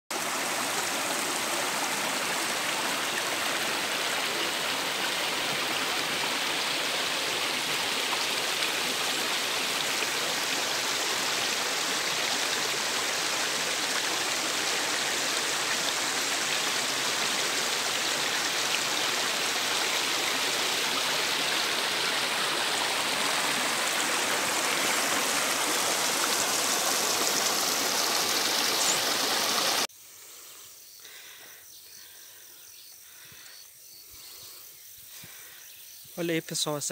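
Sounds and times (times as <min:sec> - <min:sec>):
stream flowing over rocks: 0:00.1 - 0:29.9.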